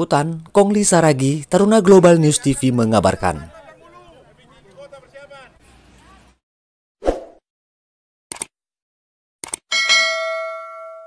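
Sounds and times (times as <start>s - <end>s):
quick clicks: 8.3s - 8.5s, 9.4s - 9.7s
bell ding: 9.7s - 11.0s.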